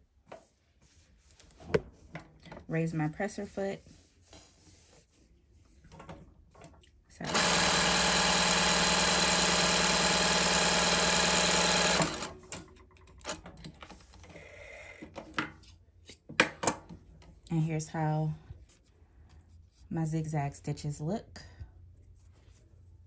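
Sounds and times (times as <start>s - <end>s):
sewing machine running: 7.2s - 12.6s.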